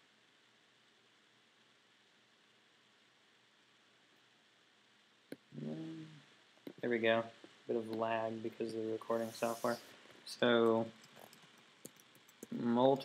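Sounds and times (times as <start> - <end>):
computer mouse click: 10.6 - 12.6.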